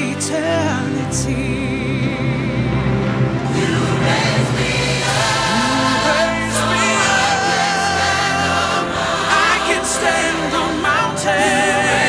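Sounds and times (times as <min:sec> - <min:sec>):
gospel choir singing: 0:00.0 - 0:12.0
instrumental accompaniment: 0:00.0 - 0:12.0.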